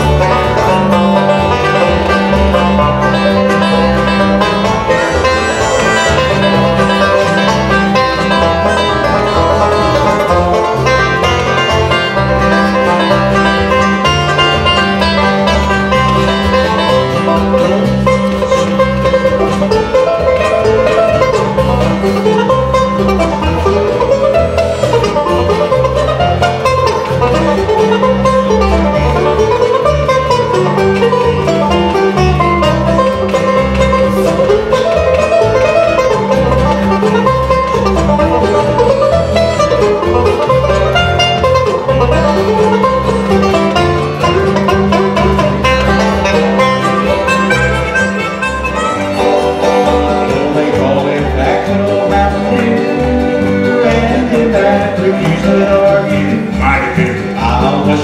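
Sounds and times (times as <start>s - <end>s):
acoustic guitar: 0.0s - 58.0s
banjo picking: 0.0s - 58.0s
upright bass: 0.0s - 58.0s.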